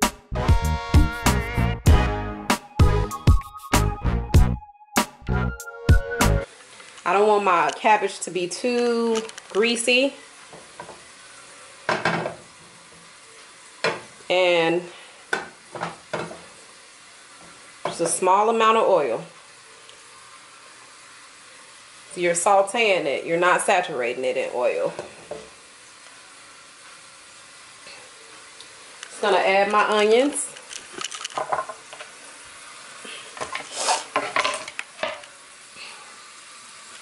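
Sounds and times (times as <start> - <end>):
oil hissing in a pan: 6.5 - 30.6, 31.5 - 37.0.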